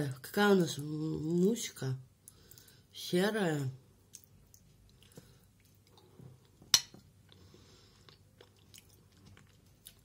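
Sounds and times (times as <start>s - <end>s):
person chewing porridge: 2.2s - 2.9s, 4.0s - 10.0s.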